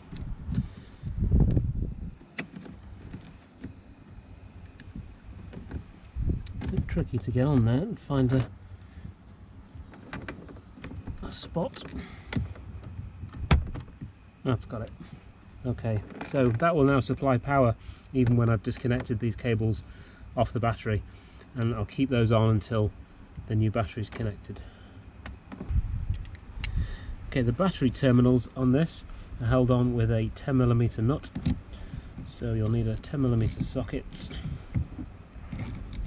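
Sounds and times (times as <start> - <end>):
low steady background noise: 0.0 - 36.0
clip and cable clicking and rattling: 25.5 - 26.8, 32.2 - 36.0.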